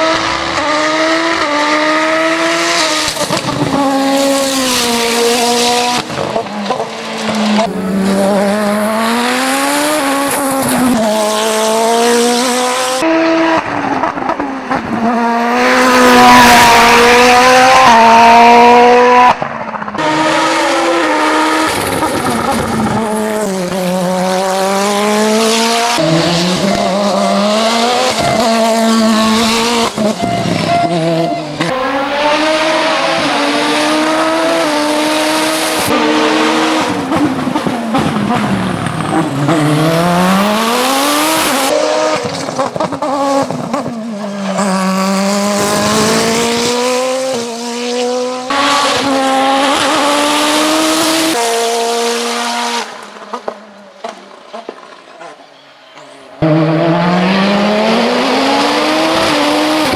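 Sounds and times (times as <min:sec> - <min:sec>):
race car engine accelerating: 0:00.0 - 0:54.2, 0:56.4 - 0:59.9.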